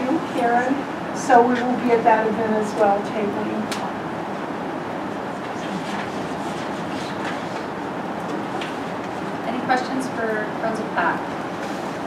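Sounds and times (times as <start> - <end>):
ventilation hiss: 0.0 - 12.0.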